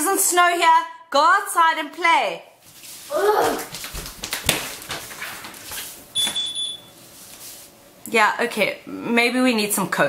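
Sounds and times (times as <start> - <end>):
short high-pitched electronic beep: 6.2 - 6.9.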